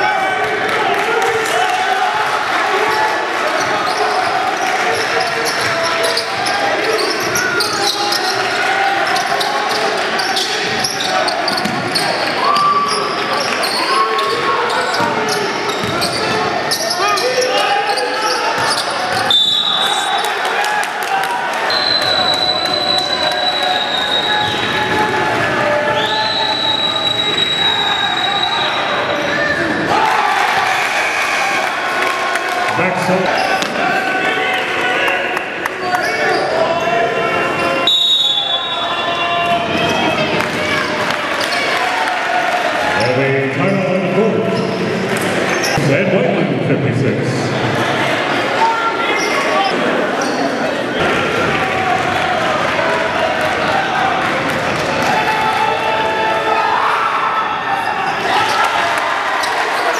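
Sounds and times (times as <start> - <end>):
echoing chatter of voices: 0.0 - 59.9.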